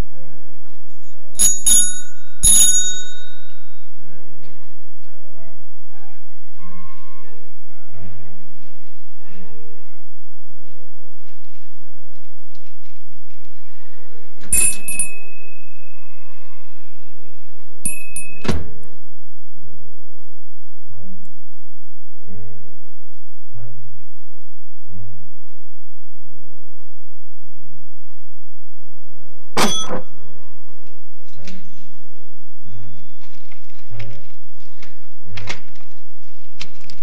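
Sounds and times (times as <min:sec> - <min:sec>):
bicycle bell ringing: 0:01.4 - 0:03.5, 0:14.6 - 0:15.4, 0:17.9 - 0:18.5
loud thunk: 0:29.6 - 0:30.1.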